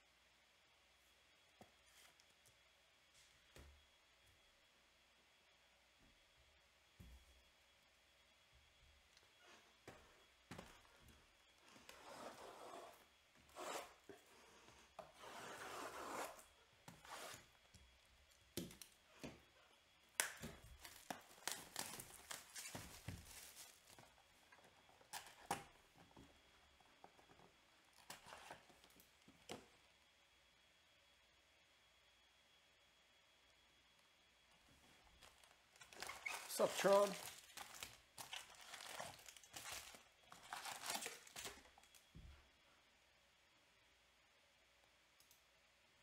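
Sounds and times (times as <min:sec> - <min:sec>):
plastic wrap tearing and crinkling: 0:20.2 - 0:24.2, 0:35.2 - 0:42.0.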